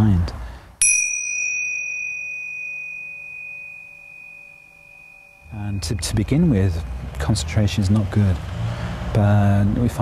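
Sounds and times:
meditation bell ringing: 0.8s - 6.8s.

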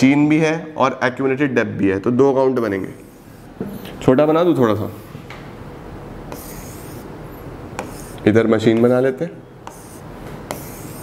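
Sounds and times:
writing on a board: 6.3s - 11.0s.

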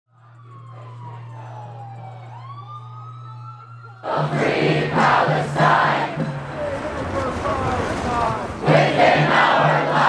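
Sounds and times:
emergency siren wailing: 0.1s - 8.6s.

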